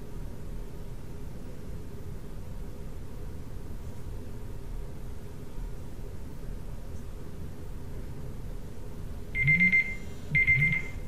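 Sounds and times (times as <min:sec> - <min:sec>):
low room hiss: 0:00.0 - 0:11.0
timer rapid high beeps: 0:09.4 - 0:11.0.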